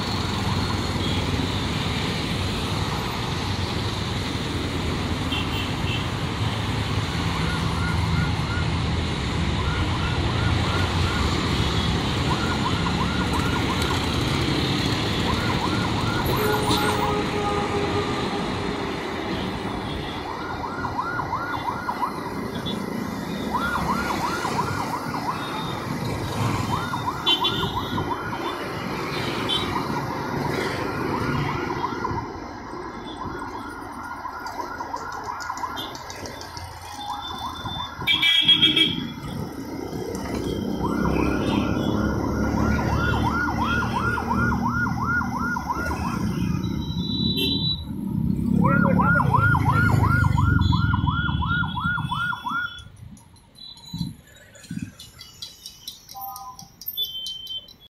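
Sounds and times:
road traffic rumble: 0.0 - 57.9
siren whooping: 7.3 - 14.3, 15.0 - 17.8, 20.0 - 38.3, 39.0 - 53.0.

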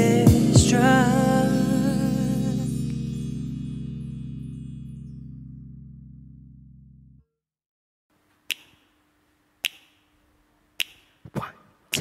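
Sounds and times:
finger snaps: 8.4 - 9.0, 9.6 - 10.2, 10.8 - 12.0.

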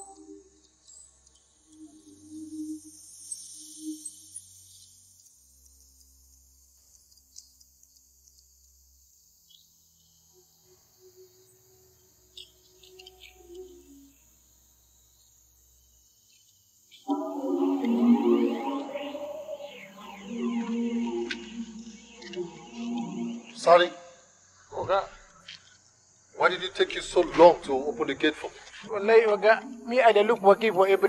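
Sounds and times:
crickets chirping: 0.0 - 31.0
low hum: 17.1 - 23.7.

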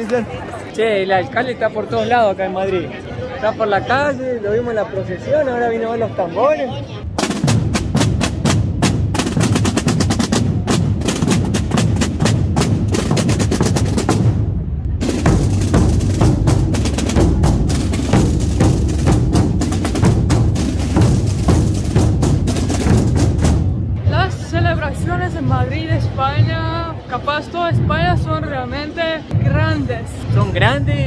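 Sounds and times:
drum band playing march: 7.0 - 26.8, 29.3 - 31.0.

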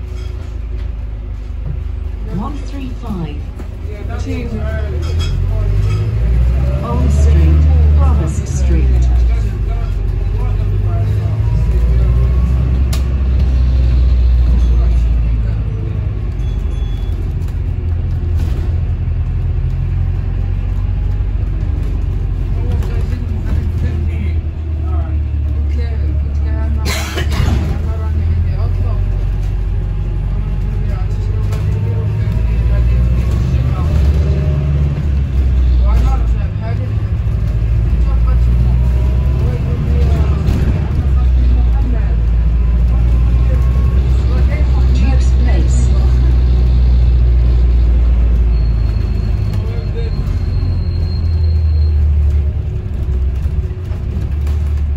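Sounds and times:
bus engine drone: 0.0 - 54.9.

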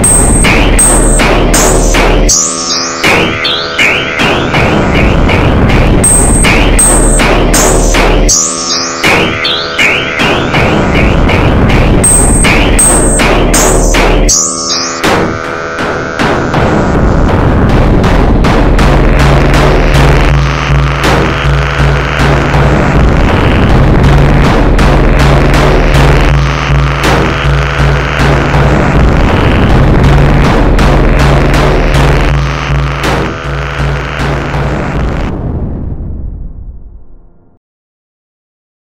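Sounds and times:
repeating higher pattern: 0.0 - 16.3
low drone: 0.0 - 36.2
clatter of sharp hits: 15.0 - 34.6.

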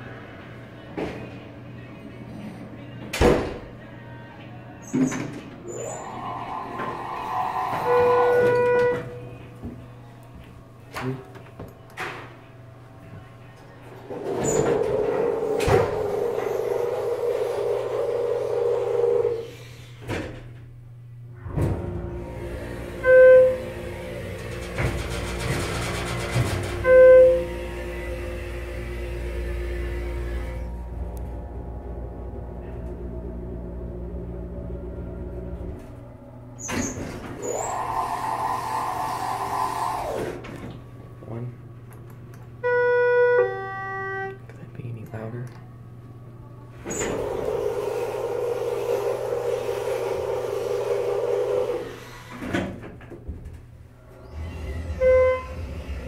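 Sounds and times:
elevator door operator: 4.8 - 9.9, 13.2 - 20.8, 21.4 - 44.4, 46.2 - 56.0
hydraulic pump motor humming: 14.0 - 20.0, 21.5 - 41.1, 46.7 - 52.8, 54.0 - 56.0.

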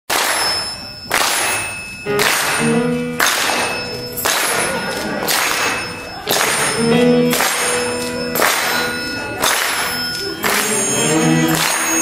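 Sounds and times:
audience clapping in unison: 0.1 - 12.0.

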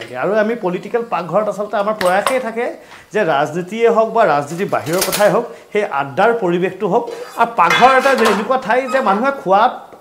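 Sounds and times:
man talking: 0.0 - 9.9
utensils clinking against cookware: 1.8 - 2.6, 4.4 - 5.4, 7.0 - 9.4.

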